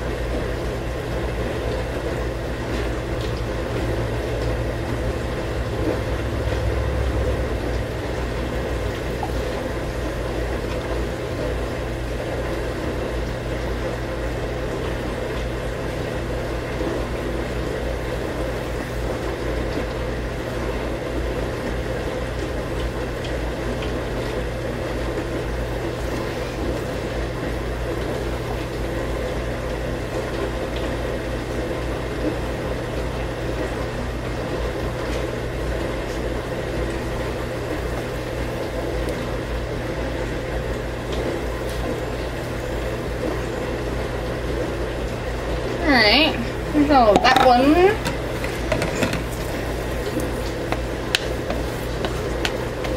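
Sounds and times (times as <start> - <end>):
mechanical hum with hiss: 0.0 - 52.9.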